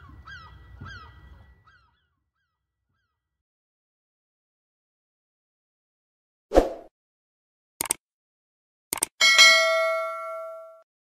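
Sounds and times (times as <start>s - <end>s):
mouse double click: 7.8s - 8.0s, 8.9s - 9.1s
bell notification chime: 9.2s - 10.8s.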